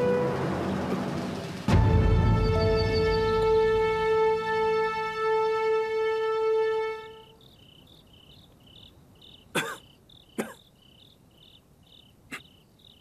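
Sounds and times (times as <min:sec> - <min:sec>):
crickets chirping: 0:06.5 - 0:13.0
man coughing: 0:09.5 - 0:10.6.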